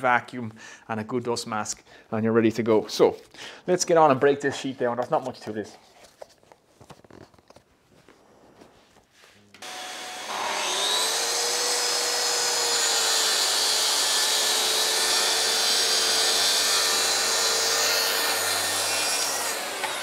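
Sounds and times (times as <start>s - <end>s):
track saw cutting board: 9.6s - 20.0s.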